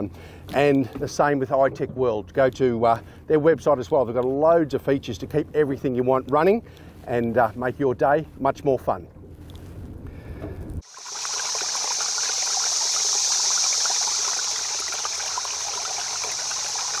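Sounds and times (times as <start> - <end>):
running water hissing: 10.8 - 17.0.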